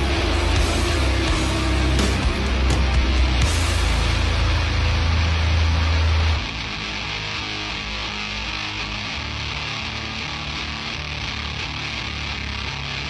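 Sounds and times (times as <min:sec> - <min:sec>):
metal song with distorted guitars: 0:00.0 - 0:13.0.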